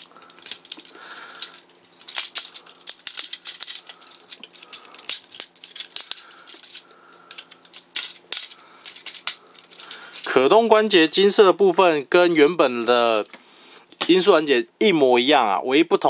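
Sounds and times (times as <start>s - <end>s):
plastic toy clicking and rattling: 0.0s - 10.4s, 12.9s - 13.4s.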